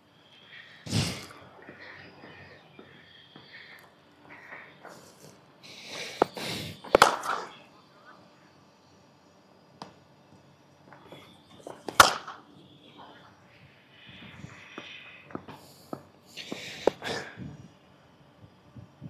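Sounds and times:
person breathing: 0:00.2 - 0:07.6, 0:12.9 - 0:17.7
low voices: 0:00.4 - 0:08.6
cricket bat striking ball: 0:06.9 - 0:07.5, 0:11.8 - 0:12.5.

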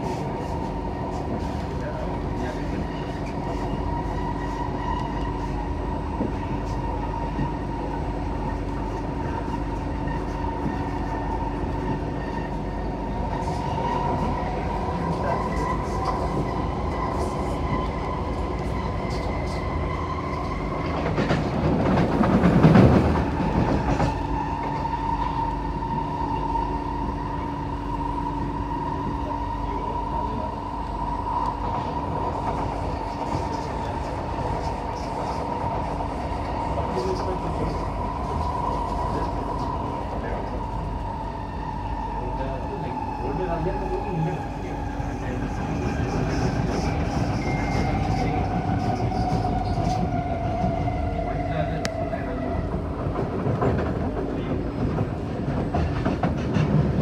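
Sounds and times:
metro car running rumble: 0:00.0 - 0:57.0.

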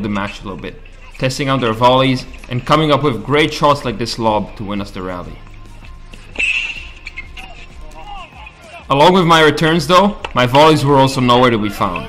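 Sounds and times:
background music: 0:00.0 - 0:12.0
racket striking tennis ball: 0:05.9 - 0:08.3
short high squeak: 0:06.4 - 0:07.6.

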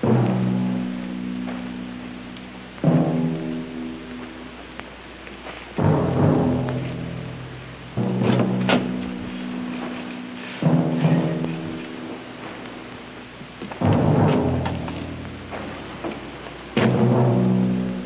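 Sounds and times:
orchestral chords: 0:00.0 - 0:04.7, 0:05.8 - 0:18.0.

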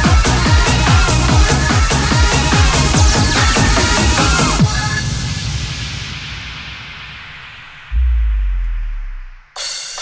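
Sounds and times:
electronic dance music: 0:00.0 - 0:05.0, 0:07.9 - 0:10.0
deep sub-bass boom with falling tone: 0:07.9 - 0:09.6.

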